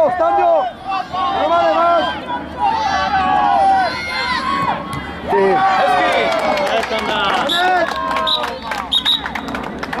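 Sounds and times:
children and spectators shouting: 0:00.1 - 0:08.8.

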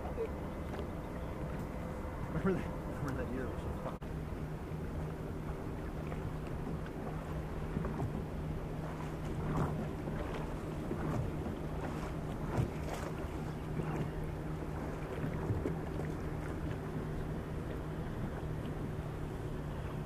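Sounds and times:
boat motor humming: 0:00.0 - 0:20.0
water lapping against boat hull: 0:00.0 - 0:20.0
knocks on boat: 0:07.7 - 0:08.2, 0:09.0 - 0:13.2.

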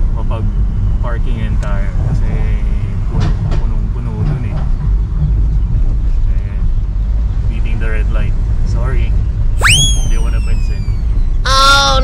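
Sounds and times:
high tone sweeping up: 0:09.6 - 0:11.4.

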